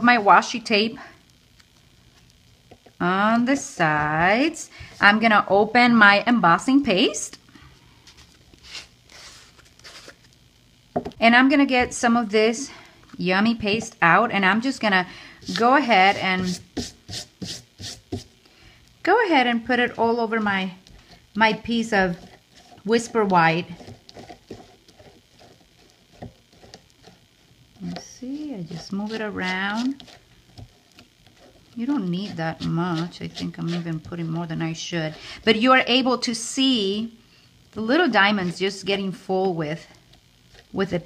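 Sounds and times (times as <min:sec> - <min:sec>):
jar lid thread scraping: 0:20.9 - 0:27.2, 0:27.8 - 0:34.4.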